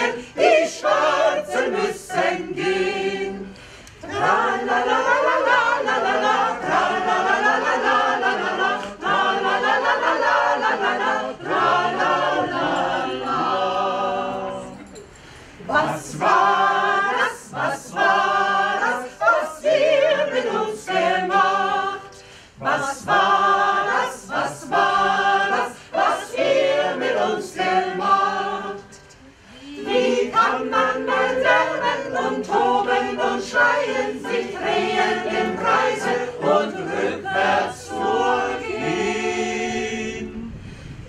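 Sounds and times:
mixed choir singing: 0:00.0 - 0:14.9, 0:15.5 - 0:40.6.

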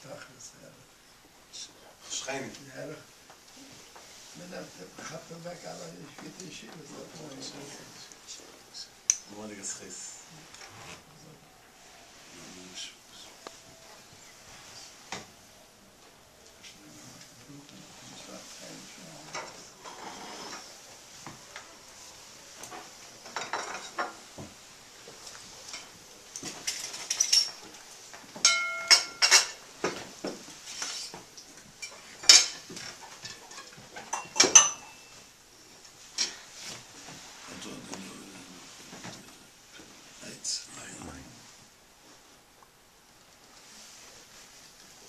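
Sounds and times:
glassware and tableware clinking: 0:23.2 - 0:24.2, 0:25.7 - 0:27.7, 0:28.4 - 0:30.0, 0:31.8 - 0:35.3.

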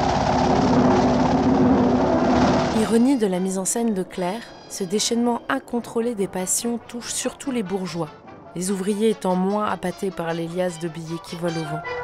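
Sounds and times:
steady rushing noise: 0:00.0 - 0:03.1.

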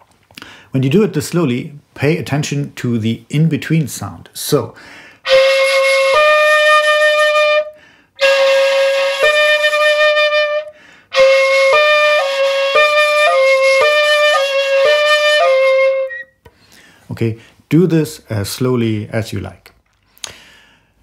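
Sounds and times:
player breathing: 0:00.3 - 0:00.7, 0:04.8 - 0:05.2, 0:07.8 - 0:08.2, 0:10.7 - 0:11.1, 0:16.5 - 0:17.6, 0:20.1 - 0:21.0
bamboo flute playing: 0:05.3 - 0:16.4.

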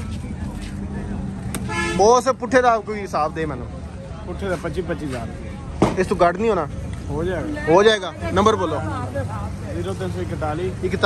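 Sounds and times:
low rumble of traffic: 0:00.0 - 0:11.0
vehicle horn toot: 0:01.6 - 0:02.2.

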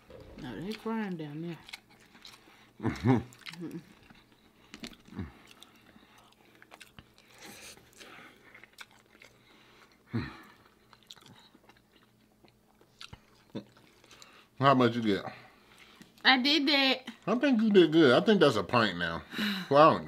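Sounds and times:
people chewing food: 0:00.0 - 0:16.3.

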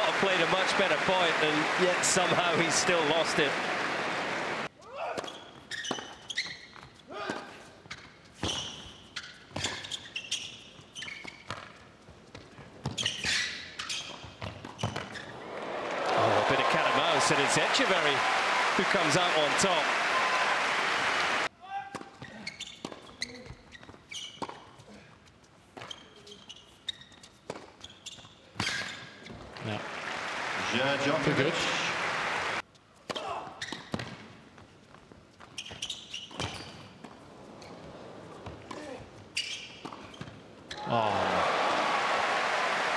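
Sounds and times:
crowd applause: 0:00.0 - 0:04.7, 0:15.3 - 0:21.5, 0:29.6 - 0:32.6, 0:40.9 - 0:42.9
shoe squeaks on court: 0:05.2 - 0:07.0, 0:07.8 - 0:15.4, 0:22.2 - 0:24.8, 0:25.8 - 0:29.5, 0:33.6 - 0:34.2, 0:35.3 - 0:40.8.

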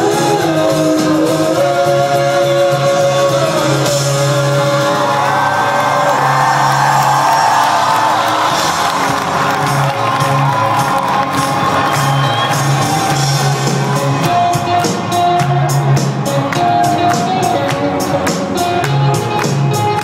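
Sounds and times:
rock band playing live: 0:00.0 - 0:20.0
crowd cheering and whooping: 0:04.7 - 0:18.2.

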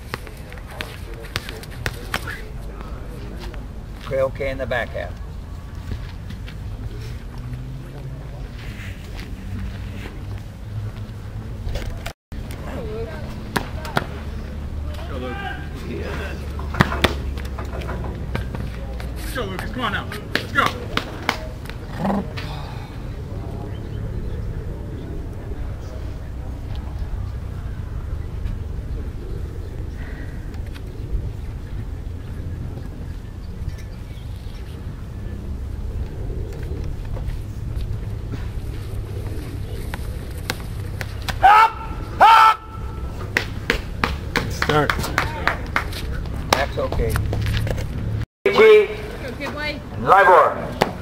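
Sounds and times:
wind rumbling on microphone: 0:21.7 - 0:42.2.

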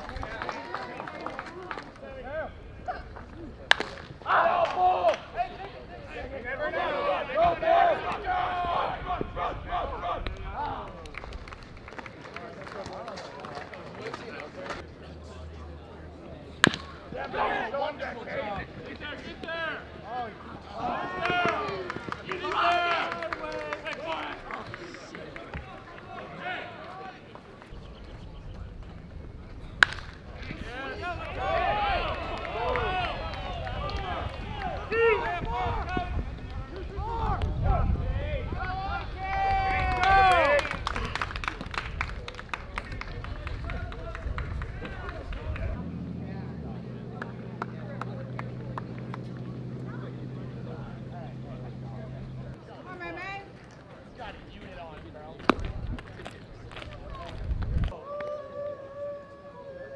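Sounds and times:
crack of baseball: 0:03.2 - 0:05.3, 0:16.6 - 0:17.4, 0:29.8 - 0:31.3, 0:55.4 - 0:57.3
people shouting: 0:04.2 - 0:05.5, 0:20.7 - 0:23.5, 0:30.6 - 0:36.1.

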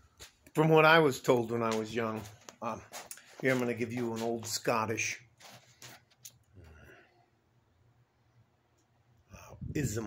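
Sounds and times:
man speaking: 0:00.6 - 0:05.2, 0:09.7 - 0:10.0.

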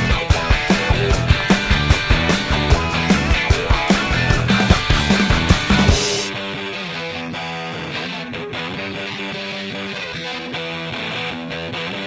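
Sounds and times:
drums and bass pounding: 0:00.0 - 0:06.7
distorted electric guitar chords: 0:00.0 - 0:12.0
fuzz rock band: 0:00.0 - 0:12.0.

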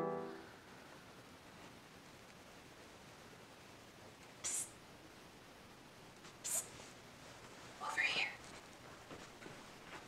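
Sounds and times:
person whispering: 0:04.4 - 0:04.8, 0:06.4 - 0:06.7, 0:07.8 - 0:08.4.

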